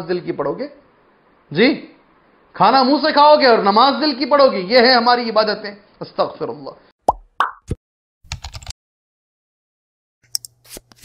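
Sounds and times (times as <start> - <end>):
keyboard typing clicks: 8.3 - 8.7.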